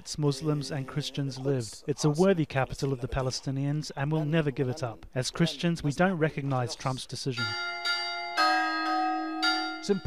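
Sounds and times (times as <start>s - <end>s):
church bells ringing: 7.4s - 10.0s.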